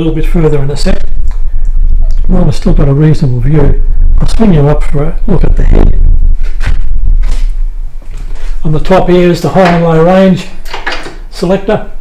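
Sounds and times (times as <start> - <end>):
low rumble: 0.0 - 10.6.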